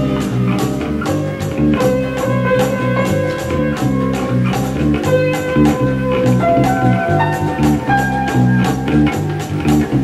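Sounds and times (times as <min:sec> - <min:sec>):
indie rock band instrumental: 0:00.0 - 0:10.0.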